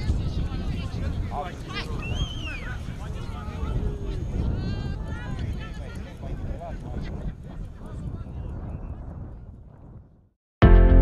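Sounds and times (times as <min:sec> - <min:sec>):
wind rumbling on microphone: 0:00.0 - 0:10.4.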